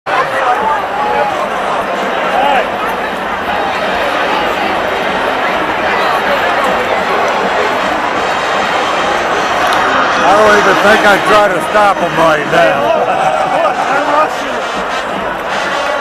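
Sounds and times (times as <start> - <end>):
stadium crowd shouting and cheering: 0.0 - 16.0.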